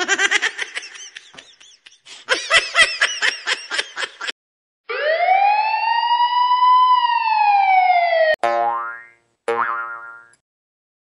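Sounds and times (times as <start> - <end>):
twangy boing sounds: 8.4 - 10.4.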